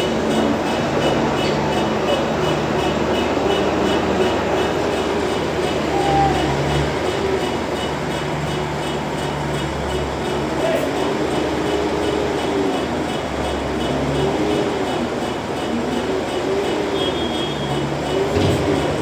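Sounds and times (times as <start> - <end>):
diesel engine running: 0.0 - 19.0.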